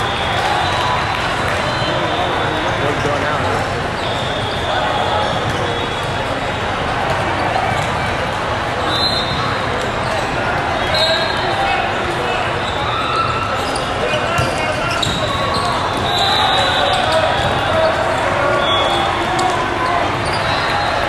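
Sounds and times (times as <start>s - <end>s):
many voices chattering: 0.0s - 21.0s.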